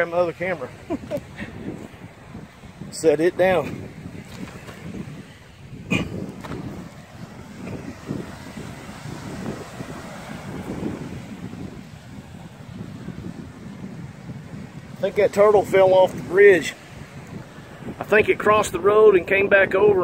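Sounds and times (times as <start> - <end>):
steady outdoor rush: 0.0 - 20.0
wind buffeting microphone: 0.0 - 20.0.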